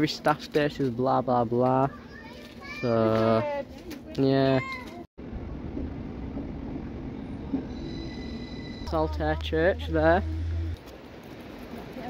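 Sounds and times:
train rumbling past: 0:05.2 - 0:12.0
high wheel squeal: 0:07.4 - 0:10.8.

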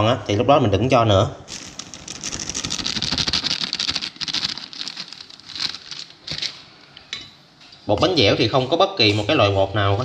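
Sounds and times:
flour shaken into bowl: 0:01.5 - 0:04.7
plastic bag crinkling: 0:01.5 - 0:06.7.

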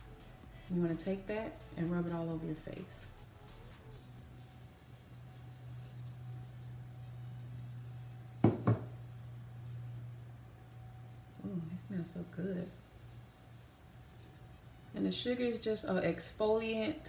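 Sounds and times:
faint low hum: 0:00.0 - 0:17.0
glass bowl knocking on hard surface: 0:08.4 - 0:09.0.

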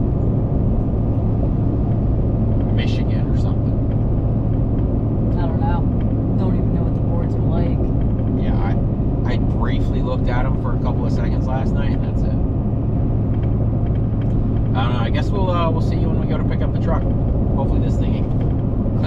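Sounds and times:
low hum: 0:00.0 - 0:19.0
road and engine drone: 0:00.0 - 0:19.0.

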